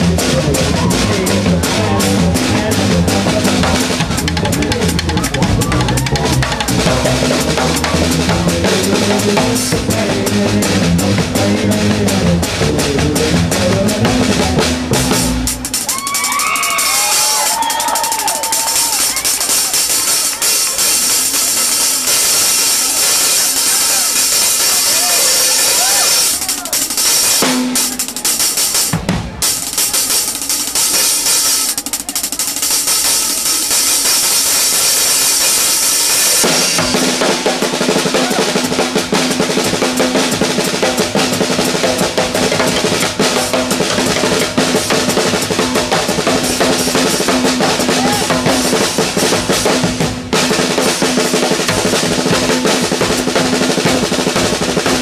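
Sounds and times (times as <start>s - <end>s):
deep pitched drum tones: 0.0s - 55.0s
ride and crash cymbals: 0.0s - 55.0s
snare and bass drum strokes: 0.0s - 55.0s.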